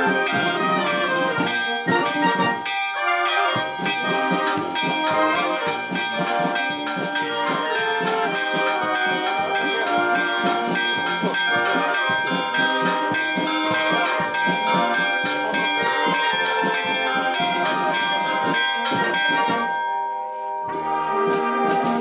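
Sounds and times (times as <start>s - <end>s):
church bells ringing in a peal: 0.0s - 22.0s.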